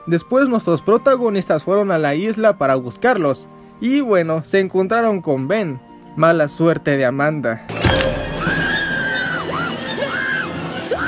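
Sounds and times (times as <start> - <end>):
orchestral film score: 0.0 - 11.0
woman screaming: 8.3 - 11.0.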